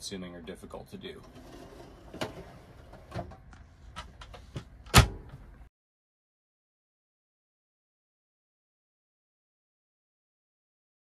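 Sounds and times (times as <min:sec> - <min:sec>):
cabinet door banging shut: 0:04.9 - 0:05.3.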